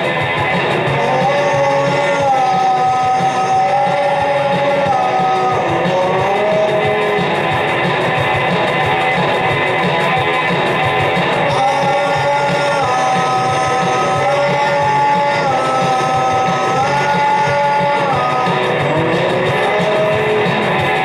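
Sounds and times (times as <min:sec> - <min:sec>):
rock music with electric guitar: 0:00.0 - 0:21.0.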